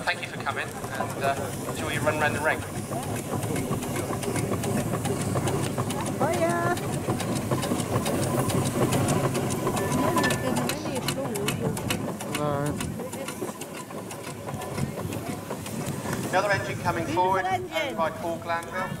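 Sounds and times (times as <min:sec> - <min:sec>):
steam traction engine running: 0:00.0 - 0:19.0.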